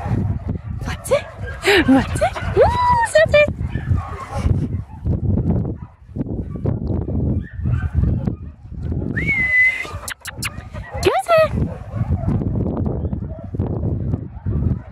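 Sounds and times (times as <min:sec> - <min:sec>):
wind rumble on microphone: 0:00.0 - 0:14.9.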